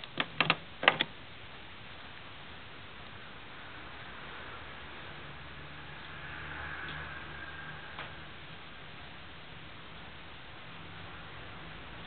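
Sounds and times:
faint whine: 0.0 - 12.0.

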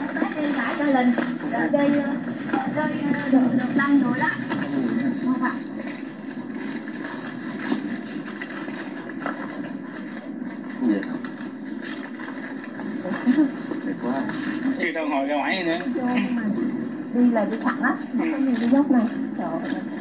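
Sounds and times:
muffled talking of people: 0.0 - 8.0, 9.6 - 20.0.

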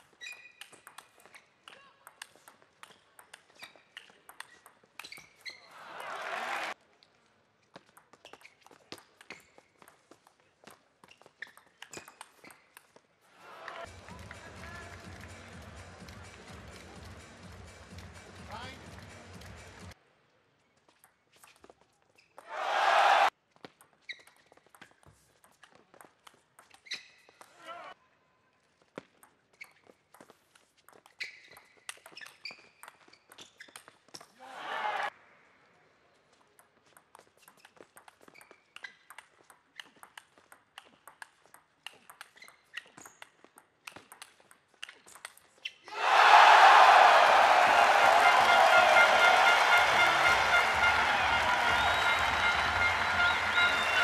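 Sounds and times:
table tennis ball clicking: 2.1 - 5.2, 36.6 - 45.5
crowd cheering and applause: 5.7 - 6.8, 22.5 - 23.3, 34.4 - 35.1, 45.9 - 54.0
crowd shouts: 5.8 - 6.8, 22.5 - 23.3, 34.4 - 35.1, 45.9 - 54.0.

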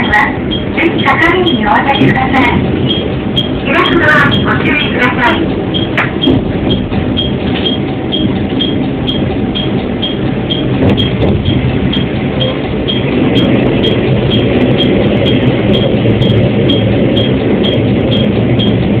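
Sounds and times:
high-pitched ticking: 0.0 - 19.0
train engine rumbling: 0.0 - 19.0.

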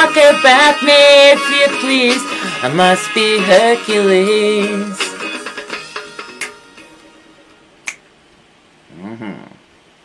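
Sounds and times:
finger snap: 6.3 - 6.6, 7.5 - 8.1.

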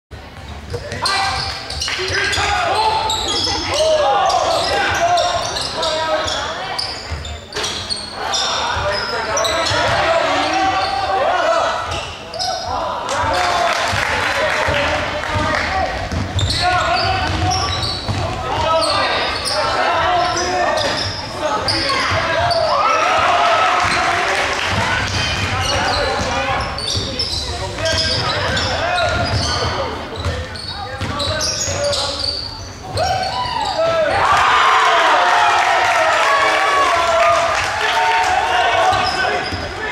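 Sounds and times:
spectators shouting and talking: 0.1 - 39.9
sneakers squeaking: 0.3 - 34.4, 38.5 - 39.9
basketball bouncing on court: 13.9 - 18.8, 24.7 - 32.0.

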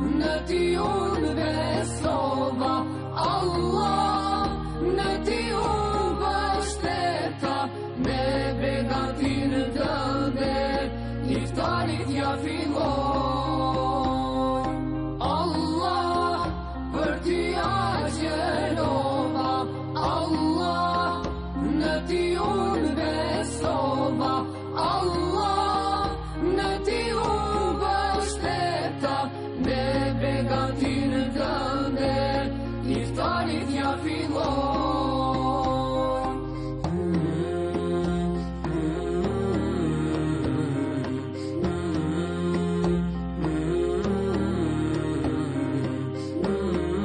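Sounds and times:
men and women singing devotional song: 0.0 - 47.0.

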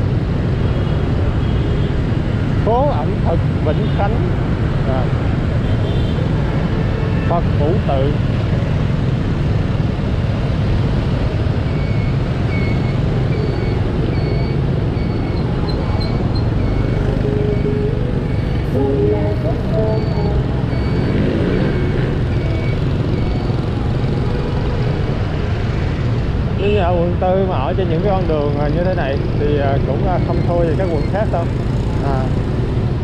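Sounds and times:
surrounding motorbikes and cars: 0.0 - 33.0
wind: 0.0 - 33.0.

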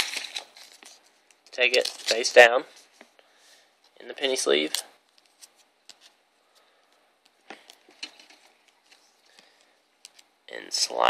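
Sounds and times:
plastic sleeve clicking and crinkling: 0.0 - 2.4.

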